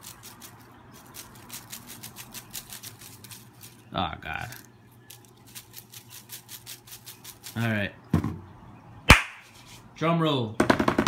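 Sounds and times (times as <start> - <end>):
paper slips rattling in wire basket: 0.0 - 7.8.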